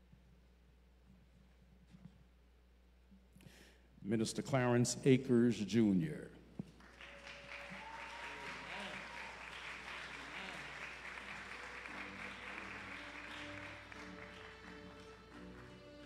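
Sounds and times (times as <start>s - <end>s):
audience applauding: 6.8s - 16.0s
soft instrumental background music: 11.4s - 16.0s.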